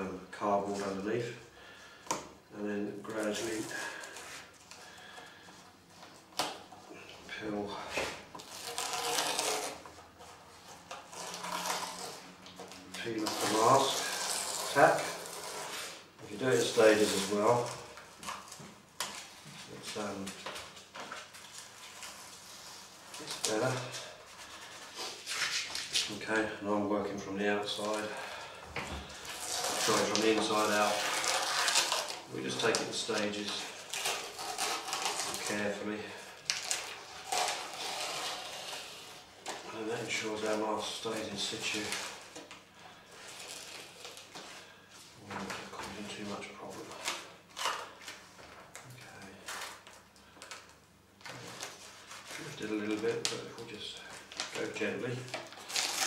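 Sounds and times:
transfer paper peeling: 7.9 - 26.5, 27.7 - 44.6, 45.2 - 56.0.

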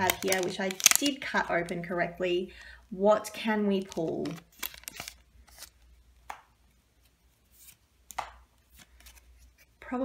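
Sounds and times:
foil pack crinkling: 0.0 - 2.0, 3.8 - 5.8.

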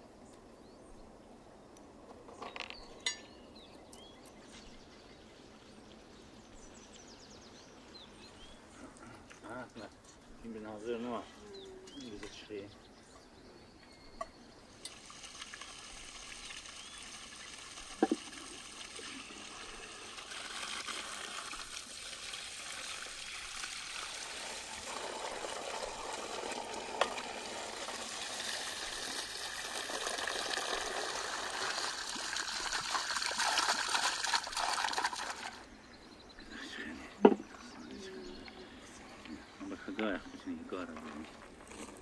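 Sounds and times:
water splashing onto stones: 14.8 - 35.7.

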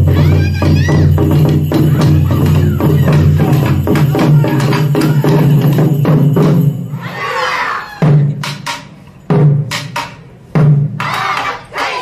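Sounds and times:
taiko drums: 0.0 - 7.0, 8.0 - 11.6.

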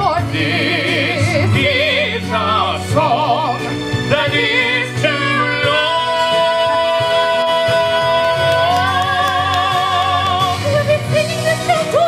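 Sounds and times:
instrumental accompaniment: 0.0 - 12.0
man and woman singing duet: 0.0 - 12.0.

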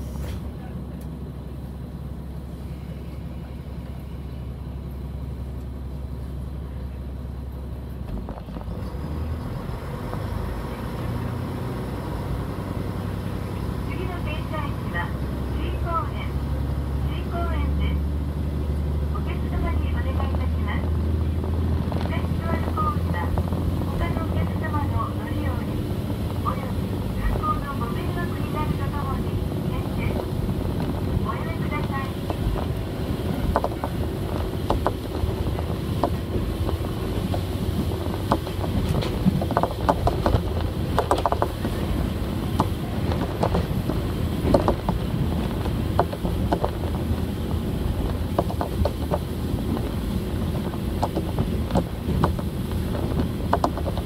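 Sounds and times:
train rumble: 0.0 - 54.0.

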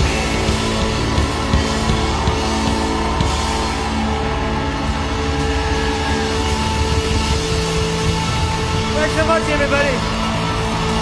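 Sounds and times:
drums and cymbals: 0.0 - 11.0.

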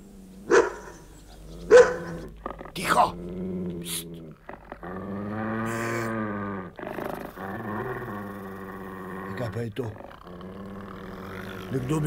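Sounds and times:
deep growling snores: 0.0 - 12.0.

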